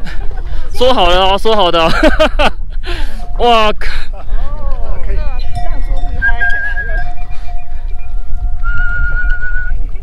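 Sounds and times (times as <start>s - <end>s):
wind rumble on microphone: 4.3s - 10.0s
person whistling long notes: 6.2s - 9.9s.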